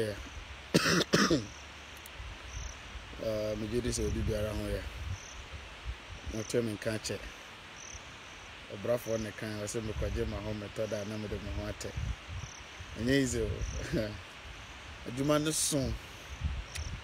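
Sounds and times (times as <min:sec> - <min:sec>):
man talking: 0:00.0 - 0:00.3, 0:03.2 - 0:04.9, 0:06.3 - 0:07.3, 0:08.7 - 0:12.0, 0:13.0 - 0:14.2, 0:15.0 - 0:16.0
crickets chirping faintly: 0:00.0 - 0:17.0
man coughing: 0:00.8 - 0:01.5.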